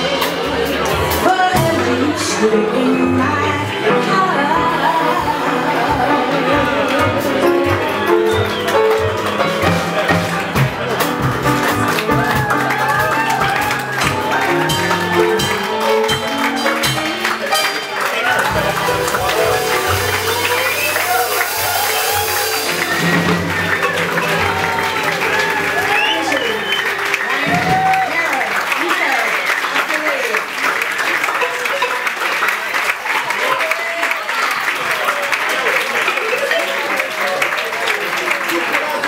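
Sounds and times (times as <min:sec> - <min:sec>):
audience applauding and cheering: 0:00.0 - 0:39.0
crowd voices: 0:00.0 - 0:39.0.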